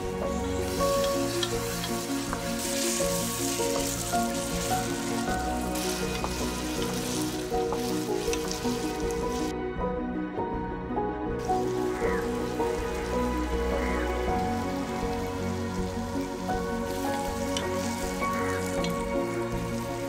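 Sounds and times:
masala sizzling in a pot: 0.0 - 9.5, 11.4 - 20.0
soft background music: 0.0 - 20.0
wooden spatula stirring: 0.6 - 9.5.

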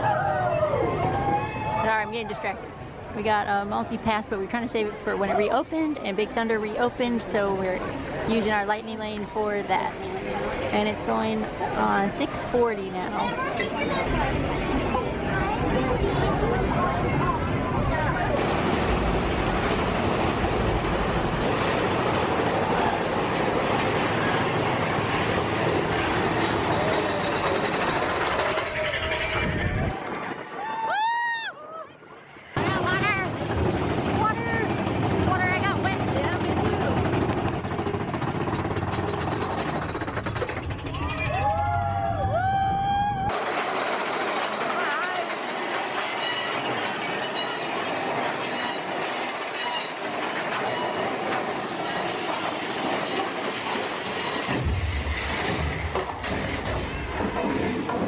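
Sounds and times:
roller coaster rumbling on track: 0.0 - 58.0
riders screaming: 40.8 - 43.3.

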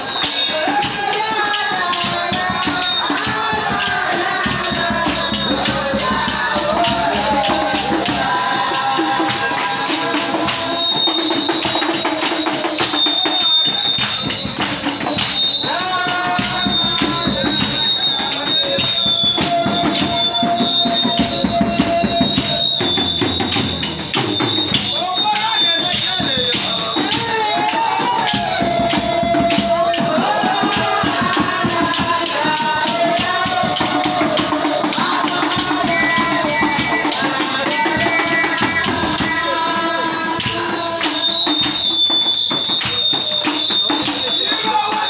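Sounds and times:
shakers and drums dance beat: 0.0 - 45.0
voices singing: 0.0 - 45.0.

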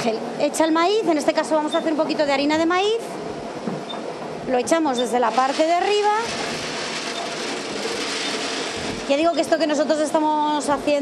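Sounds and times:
water-powered mill grinding: 5.0 - 9.8.

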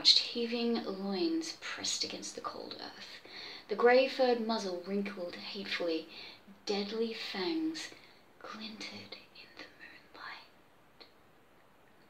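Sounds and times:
woman whispering: 7.4 - 10.6.

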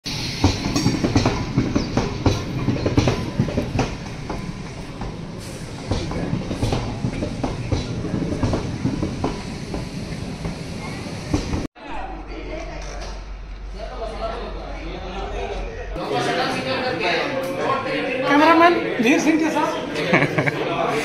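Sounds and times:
train rumble: 0.0 - 16.0
train wheels clattering: 0.1 - 11.7.

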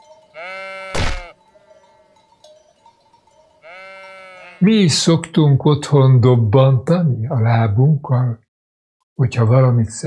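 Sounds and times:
sheep bleating: 0.4 - 1.4, 3.6 - 4.7.

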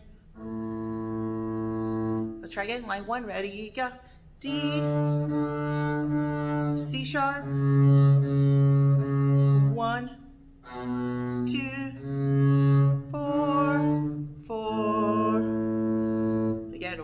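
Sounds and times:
bowed double bass: 0.0 - 17.0.

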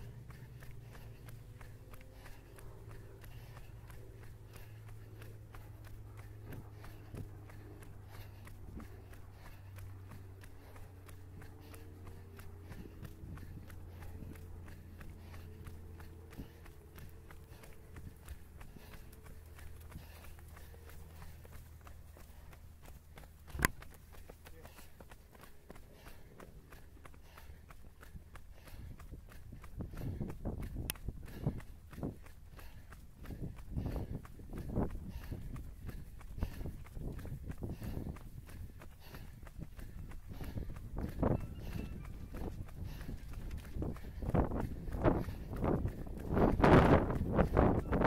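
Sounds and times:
running footsteps on tarmac: 0.0 - 48.0.

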